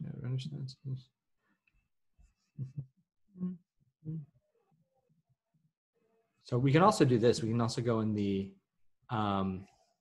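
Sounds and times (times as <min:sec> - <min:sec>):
man murmuring: 0:02.6 - 0:03.0.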